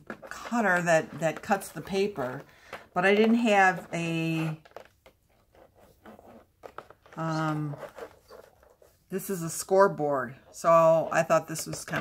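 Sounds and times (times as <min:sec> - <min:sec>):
fingers handling plastic package: 0:00.0 - 0:08.8.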